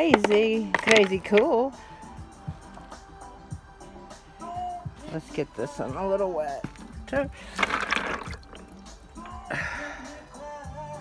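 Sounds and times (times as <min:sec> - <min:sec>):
background music with singing: 0:00.0 - 0:11.0
water splashing in a cup: 0:07.4 - 0:08.9.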